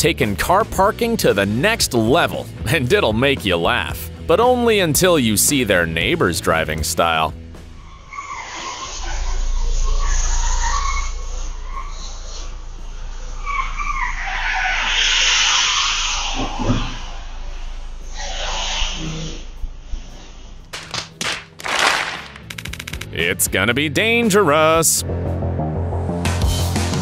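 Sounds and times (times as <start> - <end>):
car tyres squealing: 7.6 - 20.7
low engine rumble: 9.2 - 20.8
sharp clicks and swishes: 20.7 - 23.2.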